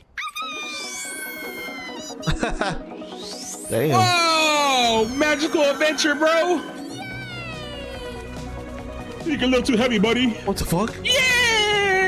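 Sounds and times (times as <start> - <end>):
cartoon background music: 0.2 - 12.0.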